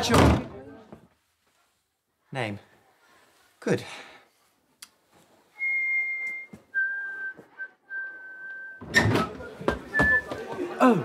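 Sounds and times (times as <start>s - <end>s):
boy whistling: 5.6s - 10.4s.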